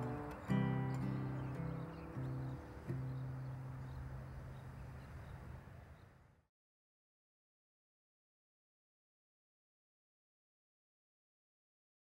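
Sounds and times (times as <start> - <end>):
acoustic guitar plucked notes: 0.0 - 3.9.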